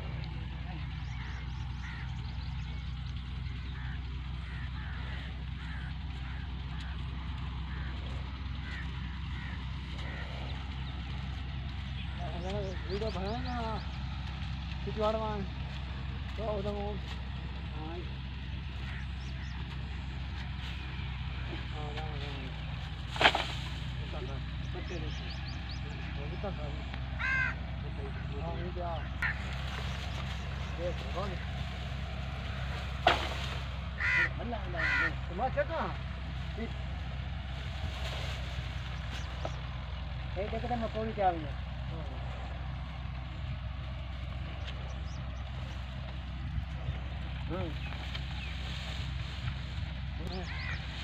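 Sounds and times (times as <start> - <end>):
tractor diesel engine running: 0.0 - 51.0.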